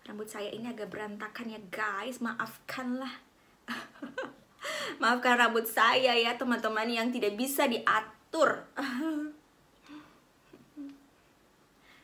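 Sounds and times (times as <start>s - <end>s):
woman laughing: 3.7s - 4.9s, 8.8s - 9.4s
faint breath: 4.6s - 5.0s, 9.8s - 10.3s, 11.8s - 12.0s
woman humming closed-mouth: 9.9s - 11.1s.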